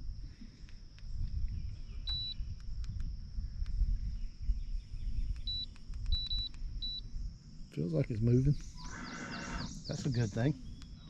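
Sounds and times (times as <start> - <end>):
faint high hum: 0.0 - 11.0
low steady rumble: 0.0 - 11.0
short electronic beeps: 2.1 - 2.4, 5.4 - 7.0.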